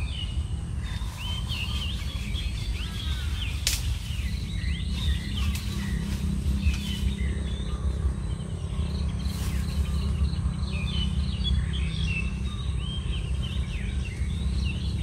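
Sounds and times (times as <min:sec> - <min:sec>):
small birds chirping: 0:00.0 - 0:15.0
steady low rumble: 0:00.0 - 0:15.0.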